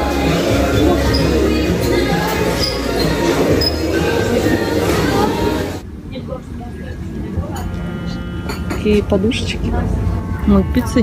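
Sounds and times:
background music: 0.0s - 5.8s, 7.4s - 11.0s
overlapping voices: 0.0s - 5.8s
low hum: 3.4s - 11.0s.

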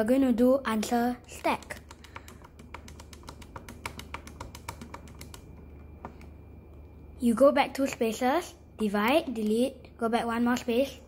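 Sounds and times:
calculator keys clicking: 0.9s - 6.2s.

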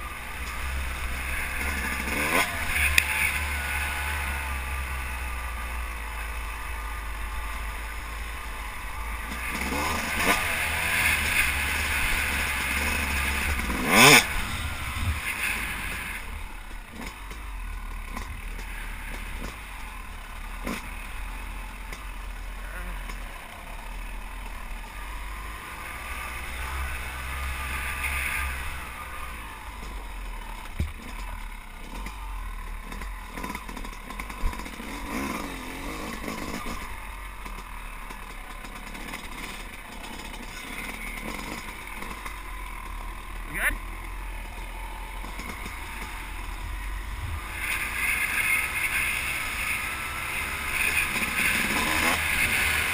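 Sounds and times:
two-stroke dirt bike engine: 0.0s - 52.9s.

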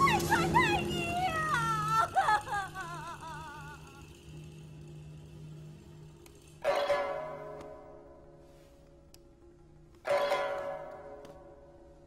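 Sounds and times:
woman wailing and sobbing: 0.0s - 4.2s.

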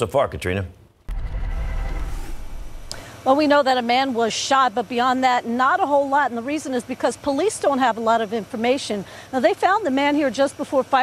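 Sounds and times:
low outdoor rumble: 1.1s - 3.2s.

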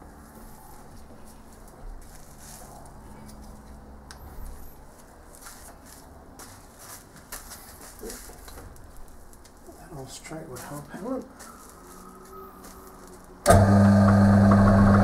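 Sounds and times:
metal lathe motor hum: 13.5s - 15.0s.

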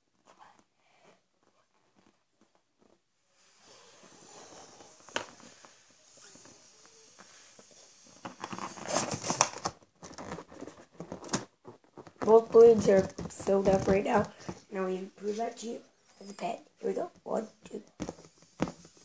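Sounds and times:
balloon rubbing against microphone: 0.2s - 11.2s, 11.8s - 19.0s
blowing into balloon: 3.4s - 9.4s.

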